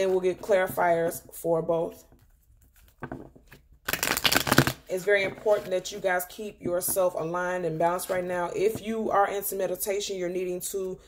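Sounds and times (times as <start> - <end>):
cards being shuffled: 2.6 - 5.8.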